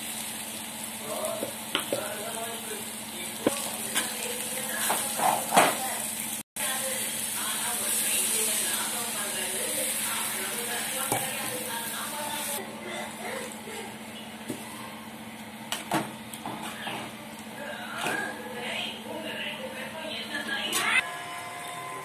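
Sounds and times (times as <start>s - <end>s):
onions sizzling in a pan: 0.0s - 12.6s.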